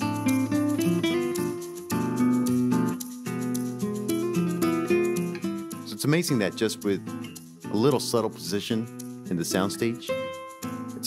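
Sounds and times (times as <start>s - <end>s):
acoustic guitars plucking: 0.0s - 11.0s
shaker ticking: 0.0s - 11.0s.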